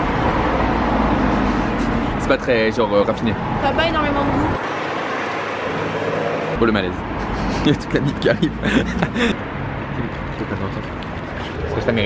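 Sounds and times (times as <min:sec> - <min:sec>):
street traffic hum: 0:00.0 - 0:12.0.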